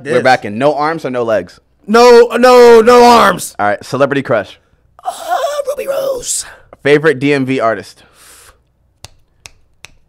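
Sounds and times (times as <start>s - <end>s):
fingers snapping: 9.0s - 10.0s.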